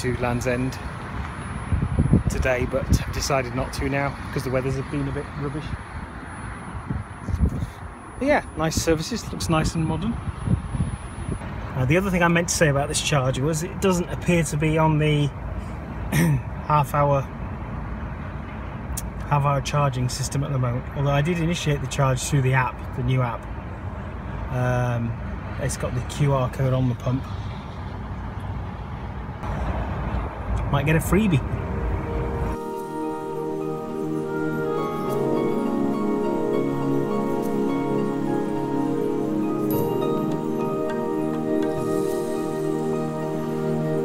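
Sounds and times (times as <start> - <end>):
wind buffeting microphone: 1.6 - 11.6
outdoor background hiss: 11.4 - 44.0
vehicle engine rumble: 22.7 - 44.0.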